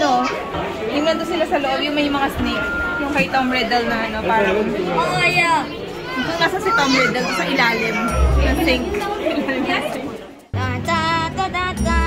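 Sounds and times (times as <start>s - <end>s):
people chatting: 0.0s - 10.4s
background music: 7.3s - 12.0s
loud music with sung melody: 10.5s - 12.0s.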